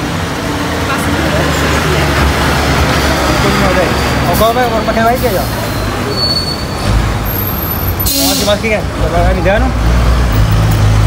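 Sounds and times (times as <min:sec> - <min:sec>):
heavy vehicle engine rumbling: 0:00.0 - 0:11.0
street traffic: 0:00.0 - 0:11.0.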